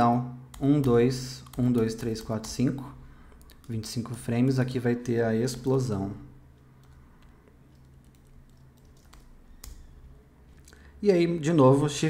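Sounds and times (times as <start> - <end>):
computer keyboard keystrokes: 0.5 - 2.7, 6.8 - 10.1.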